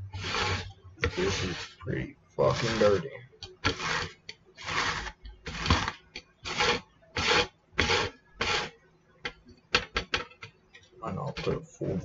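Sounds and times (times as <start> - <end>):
herb grinder rasping: 0.0 - 1.8, 2.4 - 8.7.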